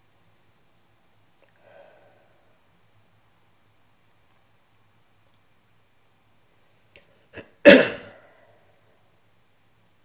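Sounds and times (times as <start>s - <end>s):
faint click: 5.2s - 5.5s
man coughing: 7.4s - 8.3s.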